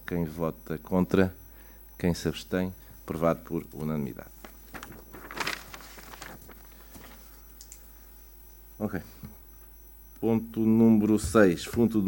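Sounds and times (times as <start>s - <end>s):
papers being handled: 3.1s - 7.9s.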